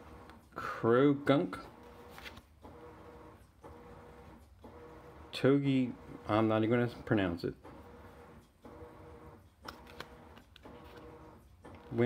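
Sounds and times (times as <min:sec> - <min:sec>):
cards sliding and flicking: 0:02.0 - 0:02.5, 0:09.6 - 0:11.1.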